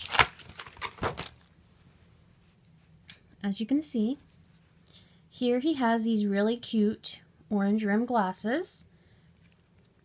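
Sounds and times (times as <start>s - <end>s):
toy packaging rustling: 0.0s - 1.5s.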